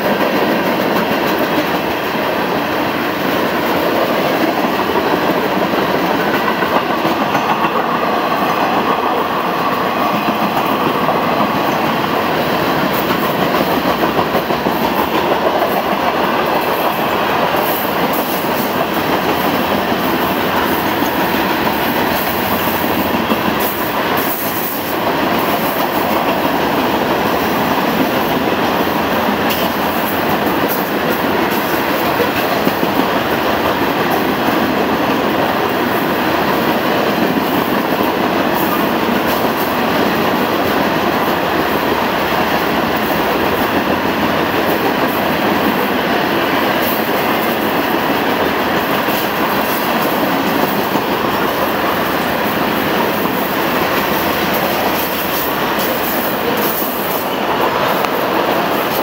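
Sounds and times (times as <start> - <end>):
train wheels rolling on rails: 0.0 - 59.0.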